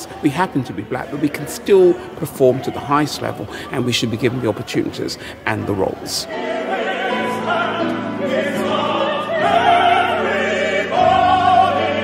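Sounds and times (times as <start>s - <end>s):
operatic voices singing together: 0.0s - 12.0s.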